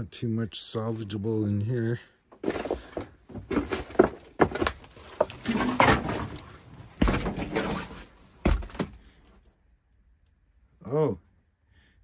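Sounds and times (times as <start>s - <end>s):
knocks and thuds: 7.0s - 9.0s.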